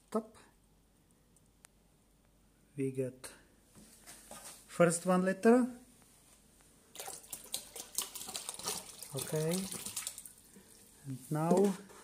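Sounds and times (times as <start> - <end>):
milk splashing into bottle: 6.9 - 10.9.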